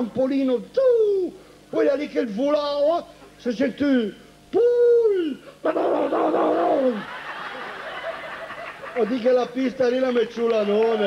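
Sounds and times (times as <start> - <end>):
man's raspy wail: 4.6 - 7.0.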